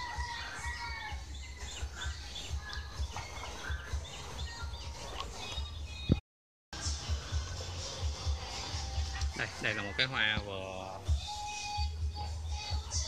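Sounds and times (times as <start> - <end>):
rooster crowing: 0.0 - 1.7
small birds chirping: 0.0 - 6.2.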